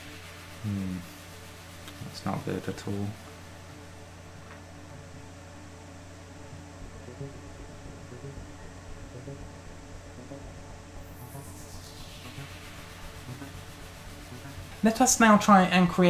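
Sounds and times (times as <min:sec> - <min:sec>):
low hum: 0:00.0 - 0:16.0
soft background music: 0:00.0 - 0:16.0.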